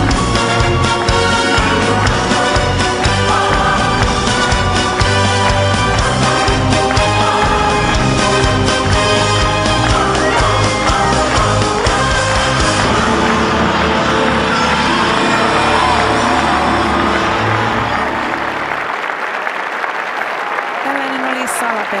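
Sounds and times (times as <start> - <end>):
music with heavy low end: 0.0 - 18.8
crowd applauding and cheering: 0.0 - 22.0.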